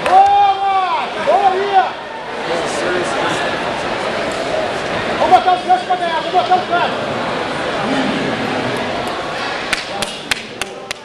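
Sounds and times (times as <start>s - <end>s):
crowd babble in sports hall: 0.0s - 11.0s.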